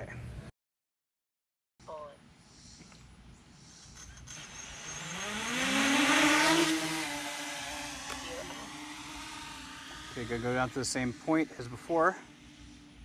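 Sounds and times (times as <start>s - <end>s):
quadcopter motors whining: 3.7s - 13.0s.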